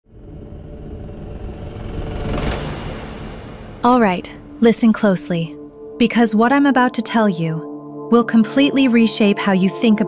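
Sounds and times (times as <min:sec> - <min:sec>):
deep cinematic rumble drone: 0:00.0 - 0:06.1.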